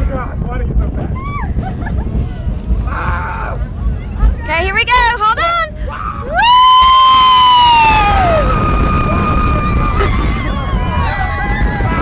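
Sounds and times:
low wind: 0.0s - 12.0s
roller coaster train rumble: 0.0s - 12.0s
roller coaster riders screaming: 5.8s - 12.0s.

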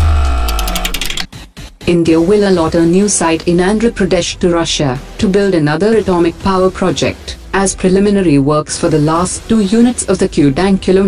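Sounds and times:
deep boom: 0.0s - 0.9s
fast ticking: 0.0s - 1.3s
musical transition sting: 0.0s - 1.3s
ringing electronic chord: 0.0s - 1.3s.

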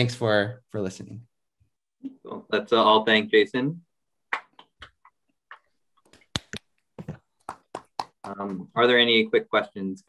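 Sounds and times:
people clapping: 7.4s - 8.6s.

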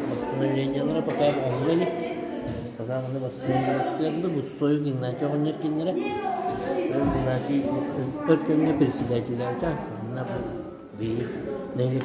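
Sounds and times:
man speaking: 0.0s - 2.0s, 2.8s - 6.1s, 6.9s - 12.0s.

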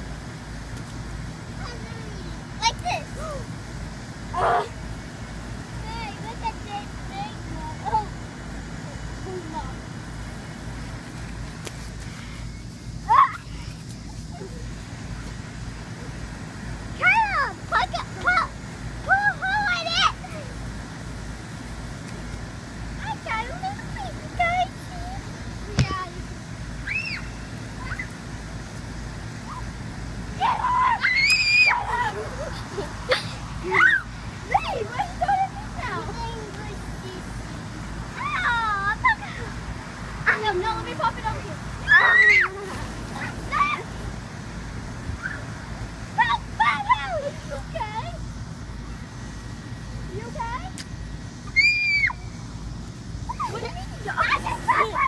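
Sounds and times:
low steady rumble: 0.0s - 55.0s.

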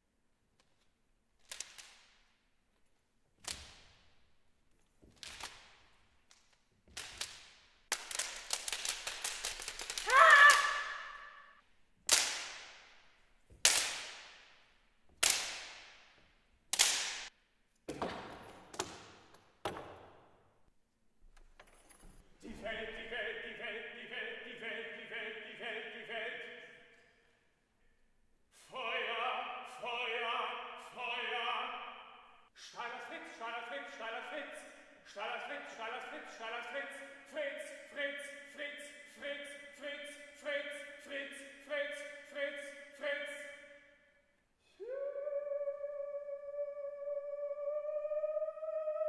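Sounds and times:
whip-like cracks of rods: 1.4s - 2.5s, 3.4s - 4.3s, 5.0s - 11.4s, 12.1s - 17.4s.

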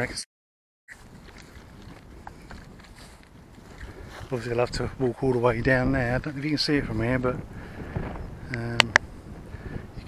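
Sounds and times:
footsteps on dry mud: 0.9s - 7.3s.

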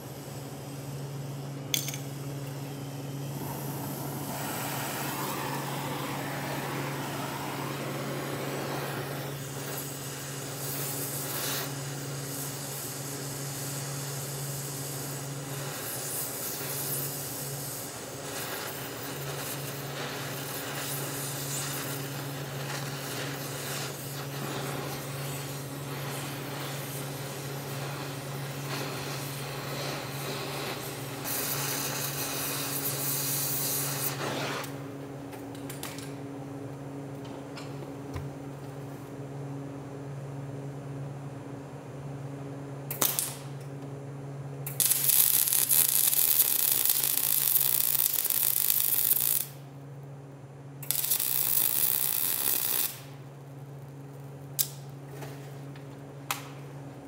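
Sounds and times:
torch flame hissing: 0.0s - 35.0s, 44.6s - 49.7s, 50.8s - 53.2s.

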